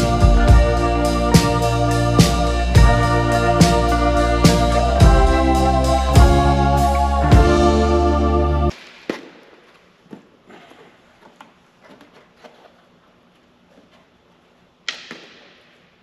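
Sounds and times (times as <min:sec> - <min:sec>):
background music: 0:00.0 - 0:08.8.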